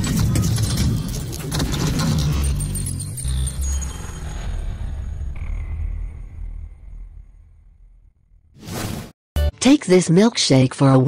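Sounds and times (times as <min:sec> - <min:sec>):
deep rumble: 0:00.0 - 0:08.6.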